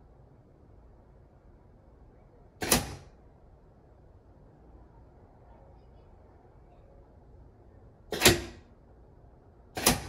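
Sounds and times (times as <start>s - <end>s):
pneumatic gate clack: 2.6s - 3.1s, 8.1s - 8.7s, 9.8s - 10.0s.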